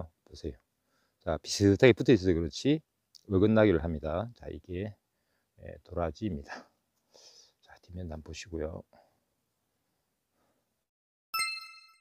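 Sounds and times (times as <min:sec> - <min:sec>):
bright bell-like ding: 0:11.4 - 0:12.0.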